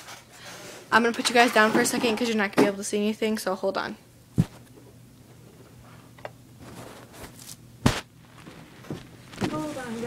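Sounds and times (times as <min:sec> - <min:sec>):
faint rustling: 0:08.2 - 0:10.0.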